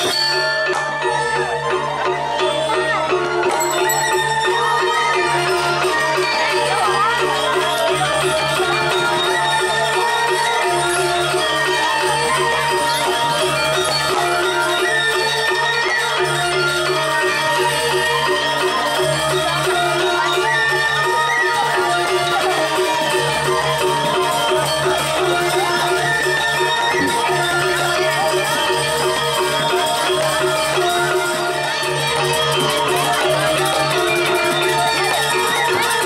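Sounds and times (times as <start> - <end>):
gamelan orchestra playing: 0.0 - 36.0.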